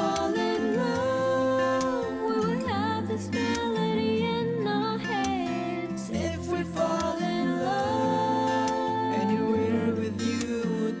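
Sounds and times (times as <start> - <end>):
man and woman singing duet: 0.0 - 11.0.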